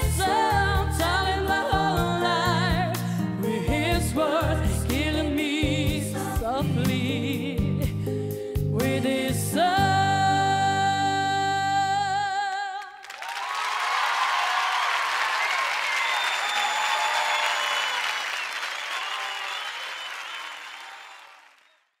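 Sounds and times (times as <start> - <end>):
audience applauding and cheering: 12.9 - 22.0.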